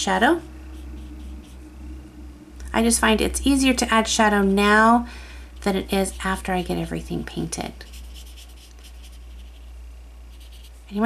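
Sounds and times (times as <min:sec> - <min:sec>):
woman speaking: 0:00.0 - 0:00.5, 0:02.6 - 0:07.9
watercolour brush strokes on paper: 0:00.0 - 0:01.7, 0:05.6 - 0:11.0
steady low hum: 0:00.0 - 0:11.0.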